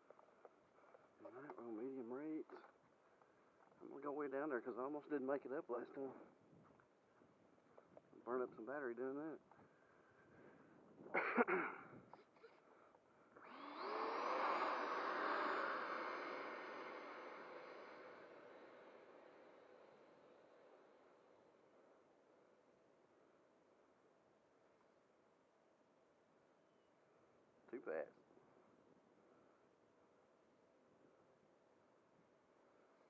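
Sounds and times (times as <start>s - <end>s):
model jet fan whine: 13.3s - 23.5s.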